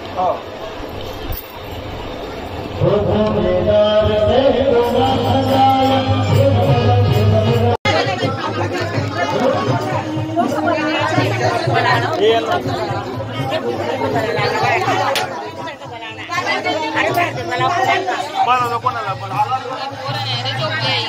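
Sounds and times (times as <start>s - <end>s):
overlapping voices chattering: 0.0s - 21.0s.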